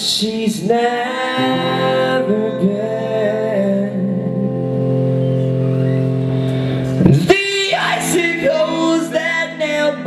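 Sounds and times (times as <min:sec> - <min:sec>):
person singing: 0:00.0 - 0:05.6, 0:06.9 - 0:10.0.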